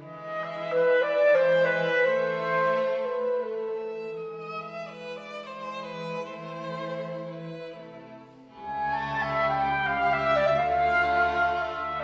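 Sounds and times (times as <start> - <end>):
clarinet and string quartet: 0.0 - 12.0.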